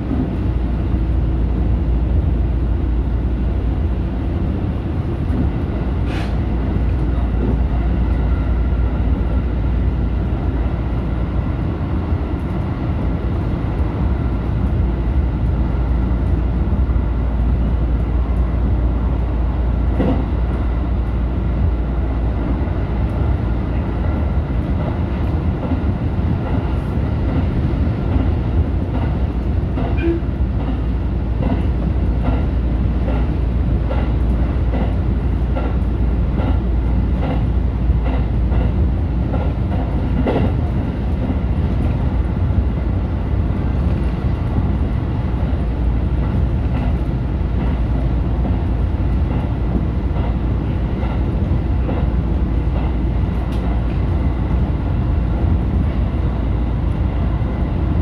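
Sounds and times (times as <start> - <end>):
train wheels rumbling on rail: 0.0 - 58.0.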